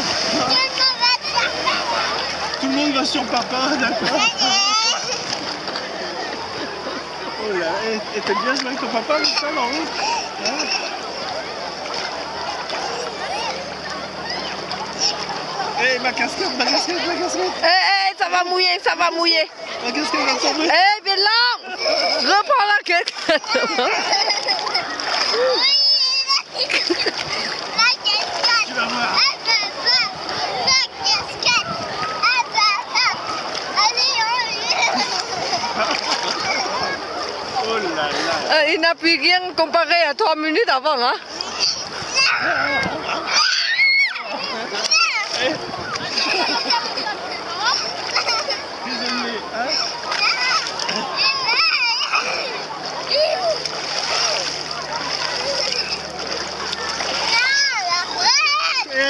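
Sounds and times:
bathers' voices: 0.0 - 59.0
water splashing: 0.0 - 59.0
child squealing: 25.3 - 26.4, 41.6 - 45.3.

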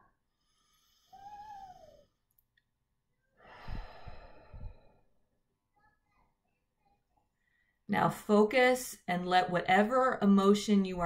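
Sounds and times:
deep breath sighed out: 3.4 - 5.1.

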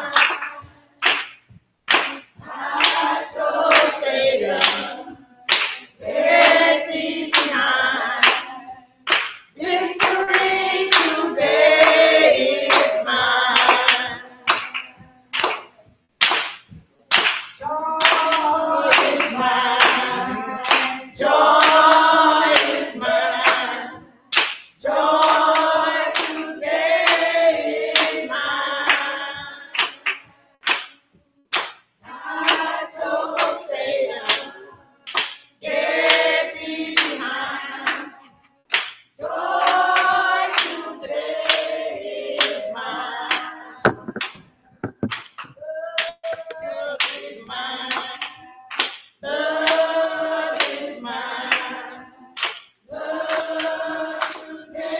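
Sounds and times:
women singing gospel song: 0.0 - 1.3, 1.9 - 15.9, 17.6 - 54.9
hand claps on the beat: 0.0 - 54.9.

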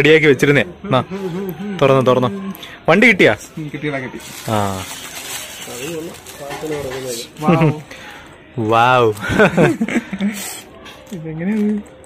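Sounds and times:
faint voices: 0.0 - 12.0
paper wrapper rustling: 4.0 - 8.2.

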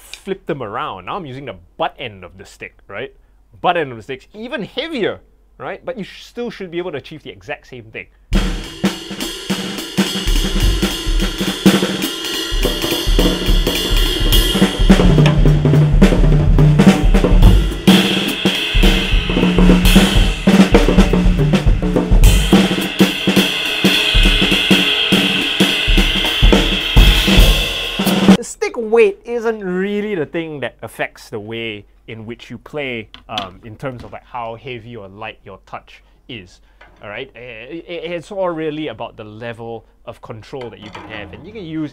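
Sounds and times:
drum kit playing jazz swing: 8.3 - 28.4
cymbal wash: 8.4 - 15.9, 16.8 - 28.4.

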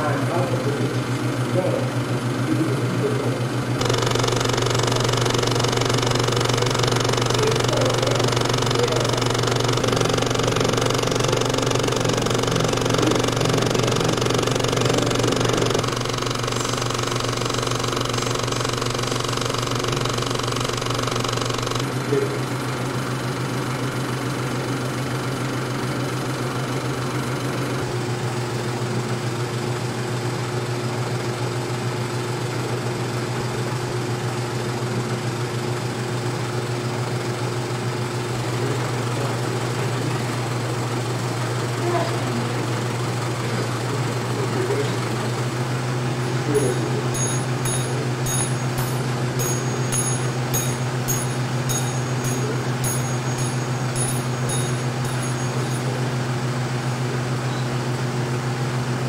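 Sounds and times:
film projector running: 0.0 - 59.0.

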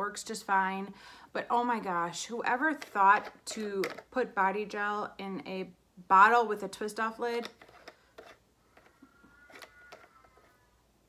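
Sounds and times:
plastic creaking: 7.4 - 10.7.

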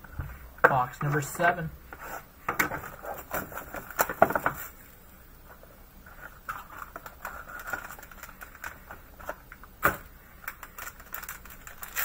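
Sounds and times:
foil wrapper crinkling: 6.1 - 12.0.

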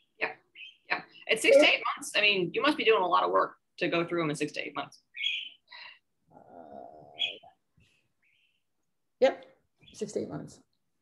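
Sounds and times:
bird chirping: 0.0 - 1.2, 4.9 - 6.0, 7.0 - 7.6.

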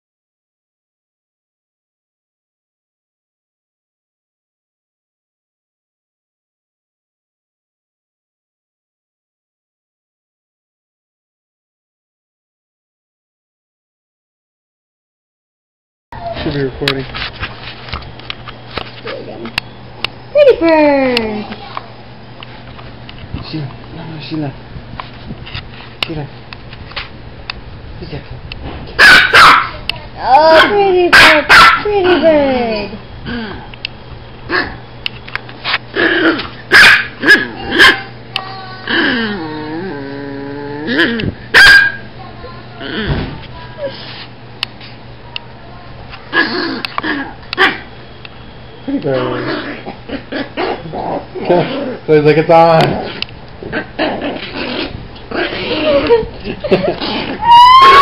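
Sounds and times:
dog barking: 29.0 - 29.8, 30.5 - 31.9, 36.7 - 38.1, 41.5 - 42.0, 47.6 - 47.9, 57.5 - 58.0
dogs growling and grunting: 33.2 - 33.8, 34.5 - 34.8, 35.9 - 38.1, 38.8 - 41.4, 42.8 - 44.0, 46.3 - 47.9, 49.0 - 58.0.

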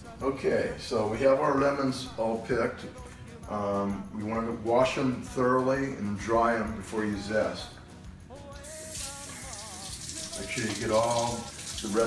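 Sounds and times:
faucet turning on: 8.6 - 12.0
water running into sink: 8.7 - 12.0.

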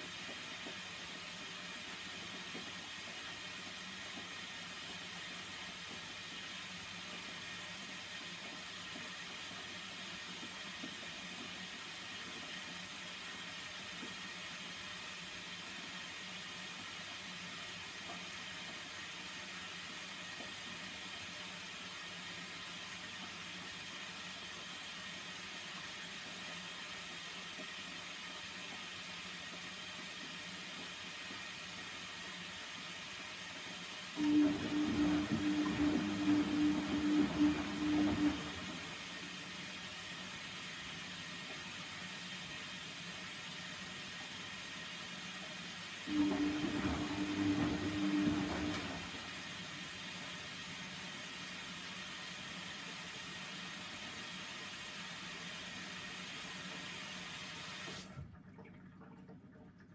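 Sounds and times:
washing machine churning: 0.0 - 59.9.

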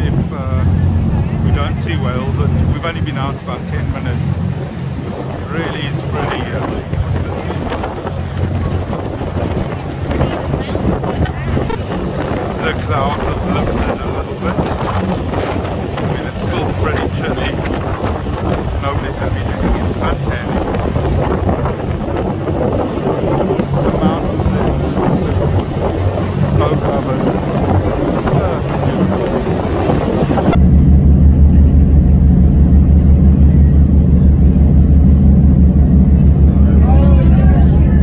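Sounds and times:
boat engine humming: 0.0 - 38.0
wind buffeting microphone: 0.0 - 38.0.

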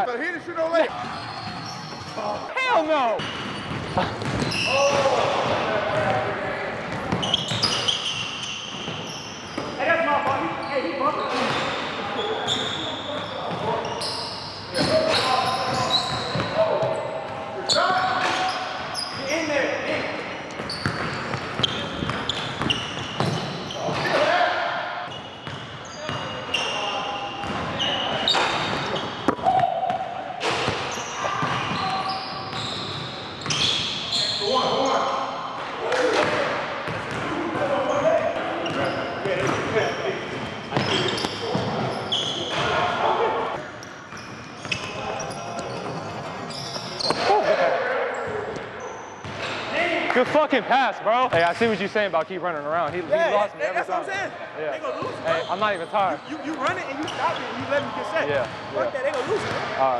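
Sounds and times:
sneakers squeaking: 0.4 - 50.3, 54.0 - 59.9.

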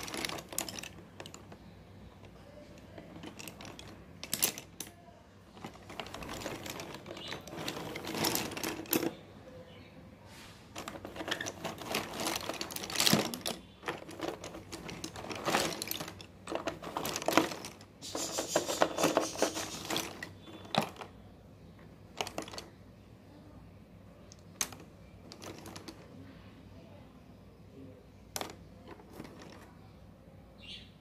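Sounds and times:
slate pencils clicking together: 0.0 - 1.6, 2.2 - 5.0, 10.8 - 21.1, 22.2 - 22.7.

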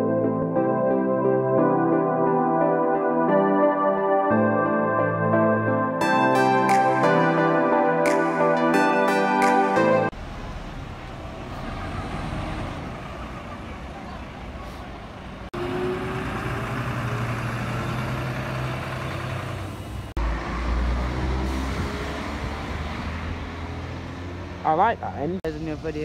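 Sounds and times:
diesel coach engines running: 10.1 - 26.0.

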